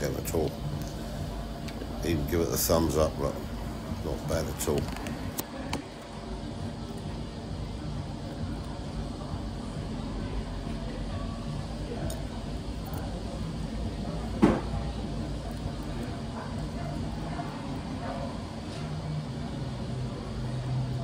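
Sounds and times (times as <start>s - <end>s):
cafe murmur and hum: 0.0s - 21.0s.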